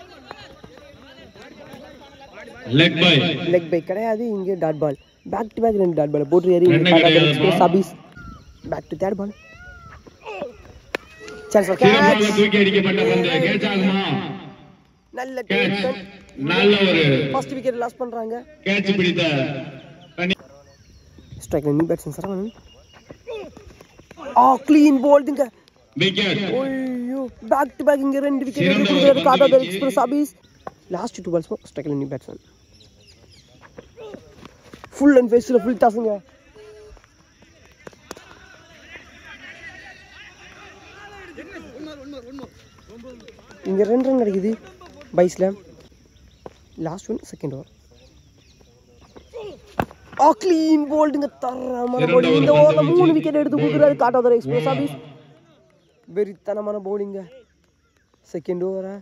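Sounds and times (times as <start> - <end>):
players calling out: 0.0 - 5.4, 6.4 - 20.6, 22.2 - 30.5, 33.5 - 45.8, 49.0 - 57.6.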